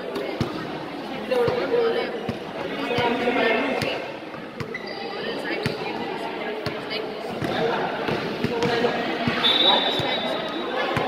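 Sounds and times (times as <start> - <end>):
chatter of people: 0.0 - 11.0
high whistle tone: 9.4 - 10.7.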